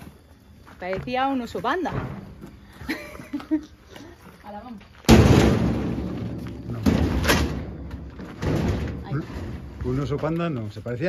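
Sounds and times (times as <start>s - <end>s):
sharp knocks with rattle: 5.1s - 9.1s.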